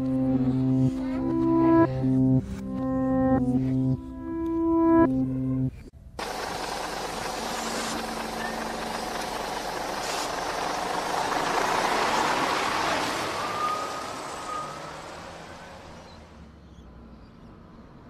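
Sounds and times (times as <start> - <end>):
large vehicle passing: 6.2 - 17.8.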